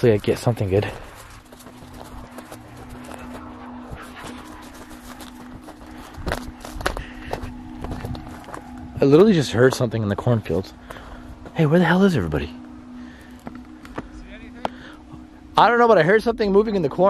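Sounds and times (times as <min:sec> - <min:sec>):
corn leaves rustling: 0:00.0 - 0:10.9
footsteps on dirt: 0:00.0 - 0:14.8
steady low hum: 0:00.0 - 0:17.0.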